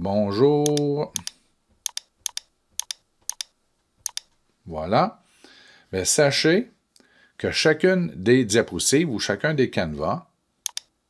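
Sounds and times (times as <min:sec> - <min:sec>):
short sharp clicks: 0:00.7 - 0:04.4, 0:10.6 - 0:10.9.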